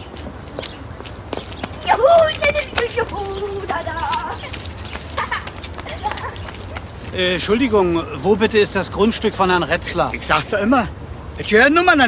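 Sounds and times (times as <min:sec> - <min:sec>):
footsteps: 0:00.0 - 0:07.8.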